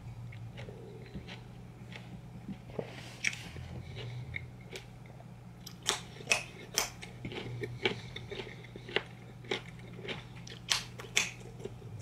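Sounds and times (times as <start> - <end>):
carrot crunching being chewed: 0.2 - 12.0.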